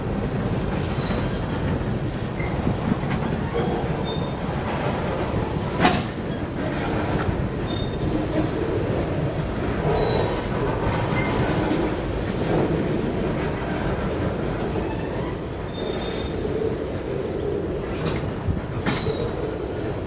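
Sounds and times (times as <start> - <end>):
train wheels rumbling on rails: 0.0 - 20.0
wheels squealing: 7.6 - 8.5, 14.6 - 16.6.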